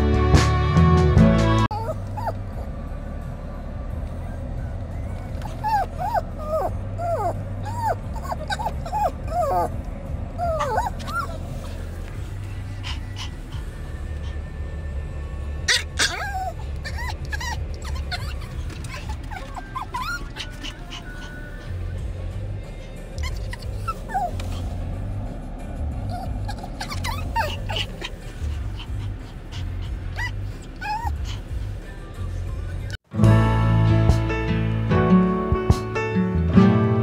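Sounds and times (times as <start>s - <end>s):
low car cabin hum: 1.6s - 33.0s
dog whining: 1.7s - 2.7s, 5.1s - 14.7s, 15.4s - 25.2s, 26.0s - 31.8s
dog yipping: 1.7s - 2.7s, 5.2s - 9.8s, 10.4s - 14.4s, 15.6s - 22.0s, 22.8s - 24.9s, 26.0s - 31.5s.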